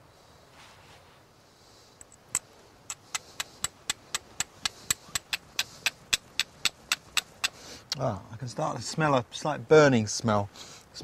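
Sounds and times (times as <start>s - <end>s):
flint striking pyrite: 2.0s - 7.6s.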